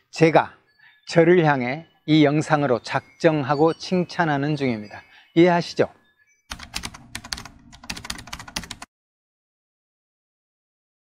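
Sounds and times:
keyboard typing: 6.5 - 8.9.

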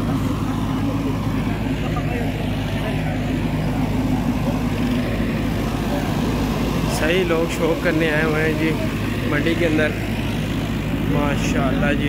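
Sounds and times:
engine droning: 0.0 - 12.0
murmur of voices: 0.0 - 12.0.

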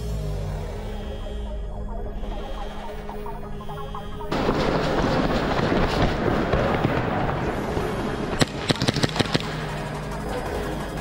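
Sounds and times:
background music: 0.0 - 11.0
airsoft pistol shots: 8.4 - 9.7.

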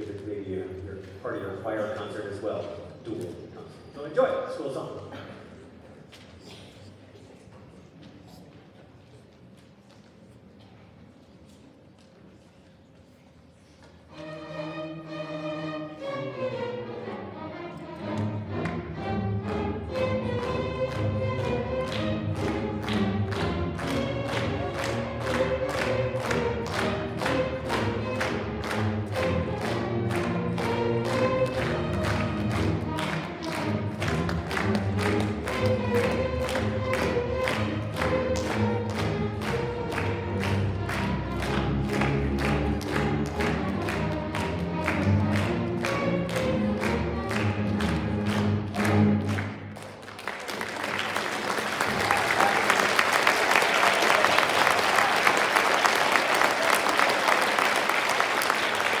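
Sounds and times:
string orchestra playing: 14.0 - 50.0
audience applause: 20.1 - 59.0.

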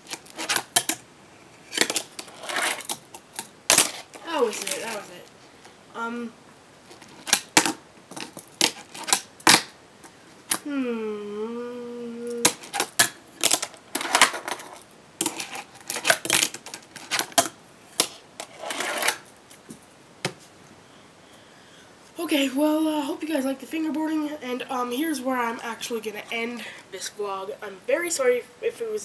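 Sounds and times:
person humming: 10.6 - 12.6.

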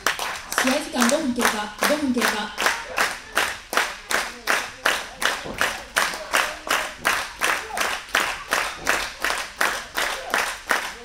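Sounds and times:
audience clapping in unison: 0.0 - 11.0.

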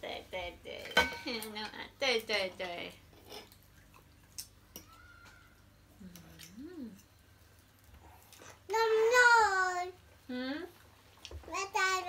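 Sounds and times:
voices at table: 7.9 - 12.0.

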